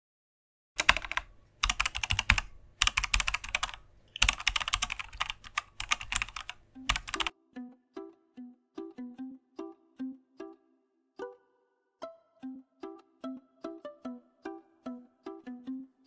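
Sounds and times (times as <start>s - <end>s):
computer keyboard typing: 0.8s - 7.3s
plucked string music: 6.6s - 16.0s.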